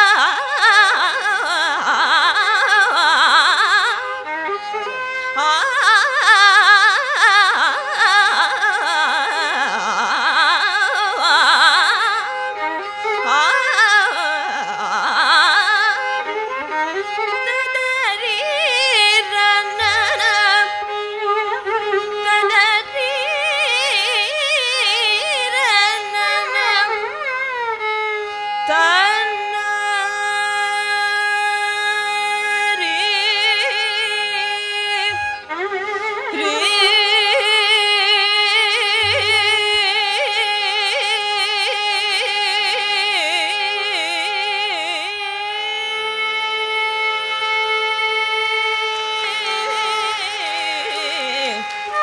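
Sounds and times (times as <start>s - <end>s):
woman singing classical music: 0.0s - 27.4s, 28.4s - 46.0s, 48.8s - 52.0s
tanpura drone: 0.0s - 52.0s
woman singing with ornaments: 36.3s - 40.4s, 49.6s - 51.7s.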